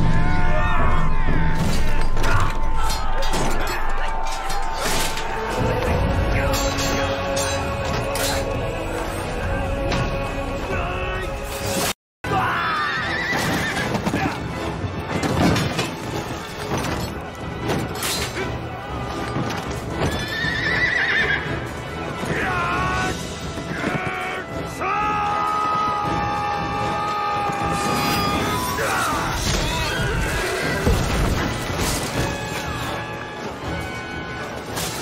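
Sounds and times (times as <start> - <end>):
dramatic film music: 0.0 - 35.0
horses neighing: 12.8 - 14.4, 20.0 - 21.6, 26.9 - 31.4.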